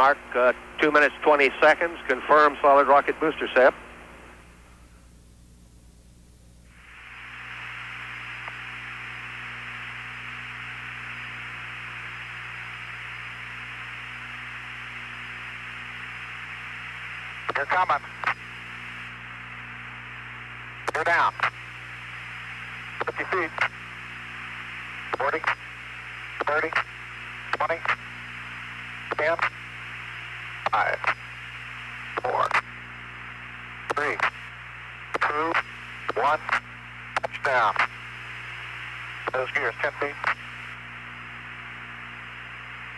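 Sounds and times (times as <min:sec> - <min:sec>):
voice over radio: 0:00.0 - 0:03.9, 0:17.5 - 0:18.4, 0:20.9 - 0:21.6, 0:23.0 - 0:23.8, 0:25.1 - 0:25.6, 0:26.4 - 0:26.9, 0:27.5 - 0:28.0, 0:29.1 - 0:29.5, 0:30.6 - 0:31.2, 0:32.2 - 0:32.7, 0:33.9 - 0:34.4, 0:35.1 - 0:36.6, 0:37.2 - 0:38.0, 0:39.2 - 0:40.6
radio channel hiss: 0:00.0 - 0:05.1, 0:06.6 - 0:42.9.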